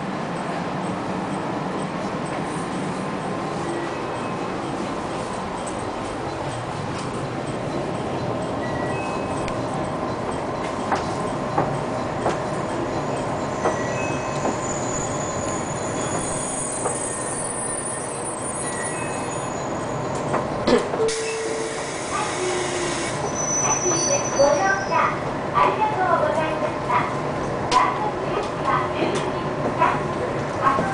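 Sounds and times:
train running with steady rumble: 0:00.0 - 0:30.9.

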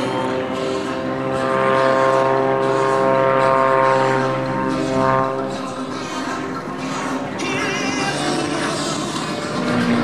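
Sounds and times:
propeller plane engine droning: 0:00.0 - 0:10.0.

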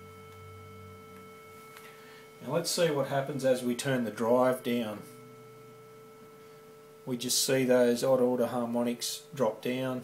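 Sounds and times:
faint overdriven sine test tone: 0:00.0 - 0:10.0.

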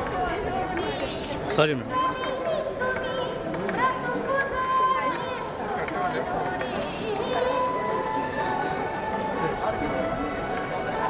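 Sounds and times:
outdoor crowd noise: 0:00.0 - 0:11.0.

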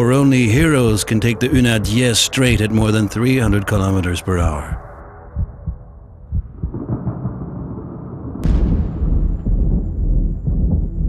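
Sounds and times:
deep steady rumble: 0:00.0 - 0:11.0
soft low thuds: 0:04.6 - 0:07.2, 0:08.4 - 0:11.0
booming hit: 0:05.4 - 0:11.0.

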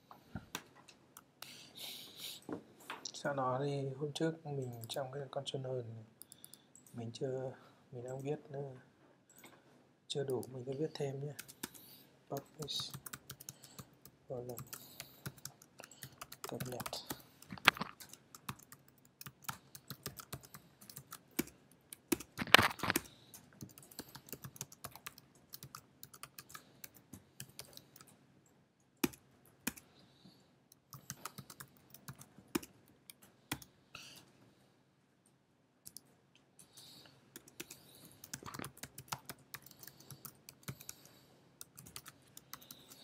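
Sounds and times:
keyboard typing: 0:10.3 - 0:28.2, 0:29.0 - 0:29.9, 0:30.7 - 0:33.7, 0:35.8 - 0:43.0.

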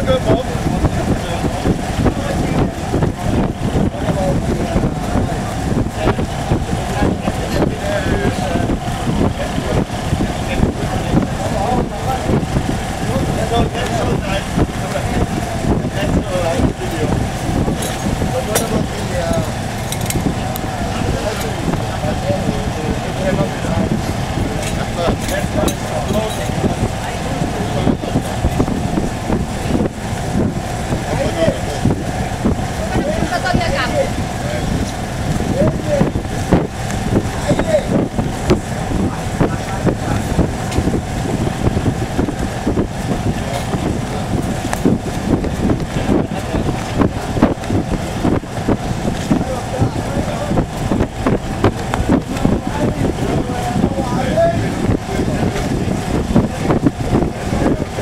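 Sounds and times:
boat engine running: 0:00.0 - 0:58.0.

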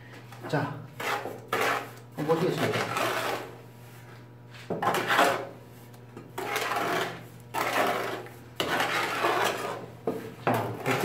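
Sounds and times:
trowel scraping wet mortar: 0:01.0 - 0:03.6, 0:04.8 - 0:05.6, 0:06.3 - 0:09.9.

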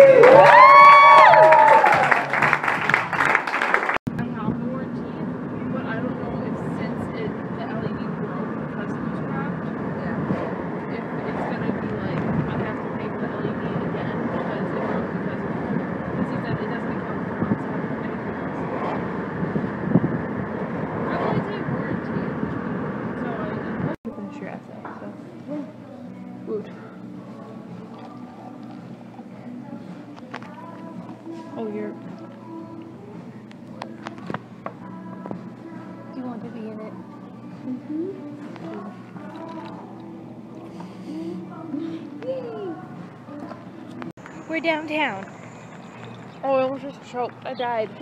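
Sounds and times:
car road noise from inside: 0:04.5 - 0:24.0.

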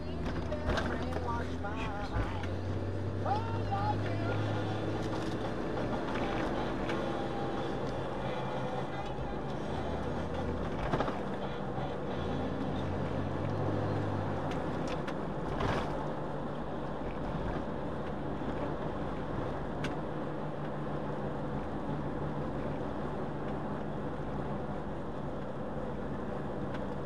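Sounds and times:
car driving on a wet road: 0:00.0 - 0:27.0.

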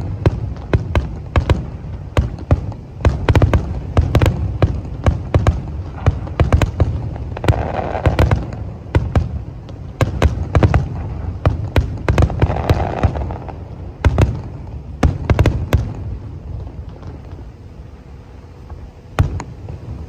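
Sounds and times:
fireworks bangs: 0:00.0 - 0:17.8, 0:18.7 - 0:20.0.

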